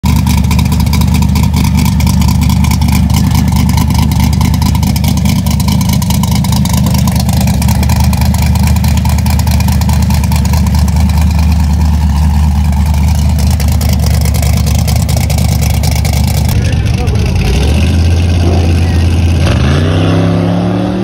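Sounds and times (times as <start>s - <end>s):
loud engine idling: 0.0s - 20.2s.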